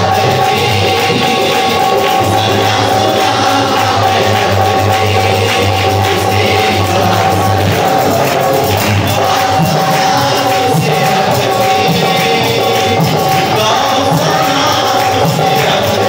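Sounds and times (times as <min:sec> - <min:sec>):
harmonium playing held notes: 0:00.0 - 0:16.0
light hand percussion: 0:00.0 - 0:16.0
man singing through a microphone: 0:00.0 - 0:16.0.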